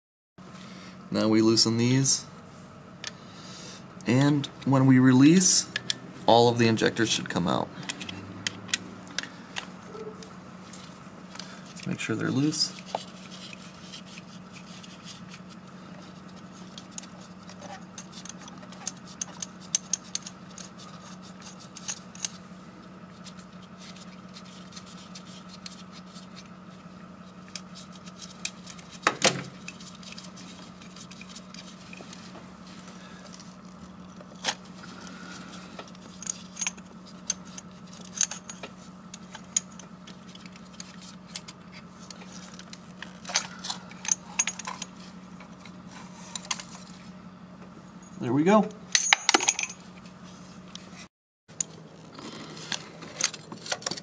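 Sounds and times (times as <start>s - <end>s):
steady low hum: 0.4s - 54.0s.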